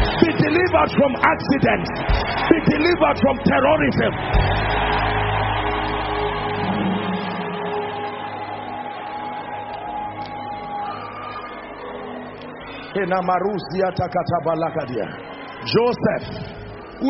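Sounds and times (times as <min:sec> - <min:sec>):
music of sustained chords: 0:00.0 - 0:17.0.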